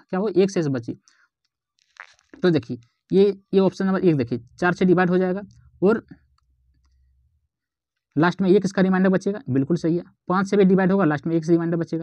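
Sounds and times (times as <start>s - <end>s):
person talking: 1.9s - 6.3s, 8.2s - 12.0s.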